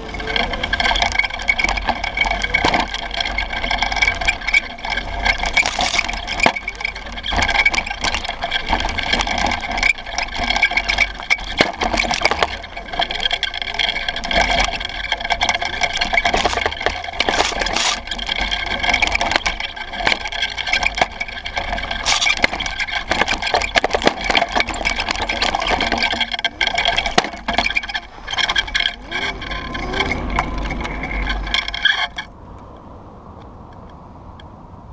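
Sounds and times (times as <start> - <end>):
chassis rattling and knocking: 0.0 - 32.8
buggy drive whine: 0.0 - 34.9
low engine rumble: 0.0 - 34.9.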